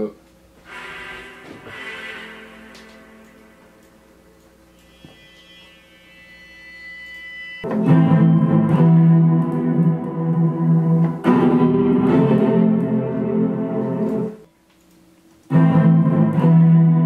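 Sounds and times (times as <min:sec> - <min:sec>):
keyboard chords: 0:07.6 - 0:14.5, 0:15.5 - 0:17.0.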